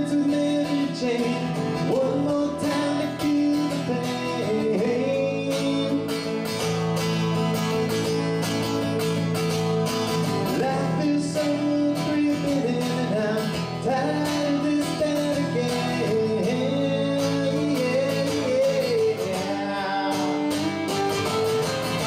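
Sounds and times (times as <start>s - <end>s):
acoustic guitar strumming: 0.0s - 22.0s.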